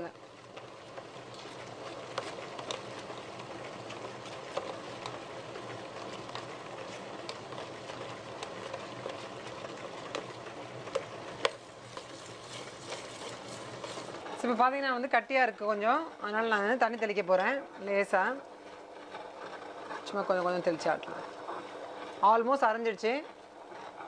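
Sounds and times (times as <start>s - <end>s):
grinder motor hum: 0.0s - 14.4s
wet batter squelching: 0.4s - 14.3s.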